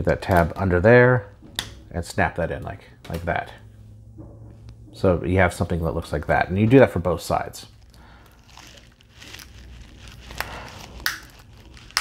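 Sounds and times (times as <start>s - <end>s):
plastic parts rustling: 7.6s - 12.0s.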